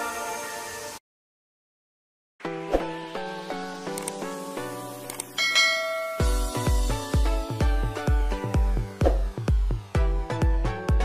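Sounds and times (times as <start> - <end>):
bell-like chime: 5.4 - 6.8.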